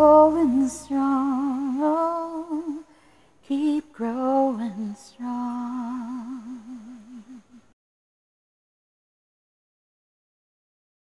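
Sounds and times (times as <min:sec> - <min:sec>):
woman singing long vibrato note: 0:00.0 - 0:02.9, 0:03.5 - 0:07.6.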